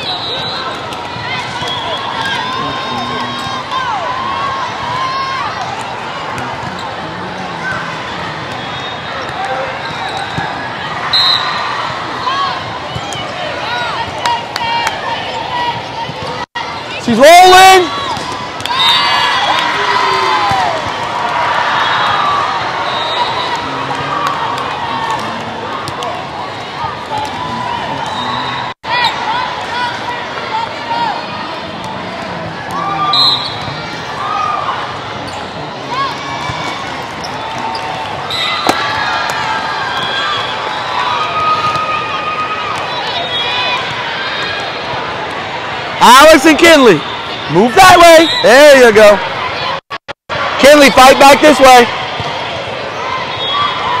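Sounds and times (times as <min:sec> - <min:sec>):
crowd chatter: 0:00.0 - 0:54.0.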